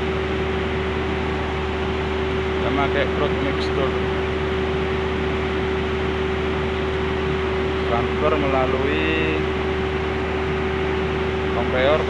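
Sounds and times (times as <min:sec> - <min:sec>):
mill machinery running: 0:00.0 - 0:12.0.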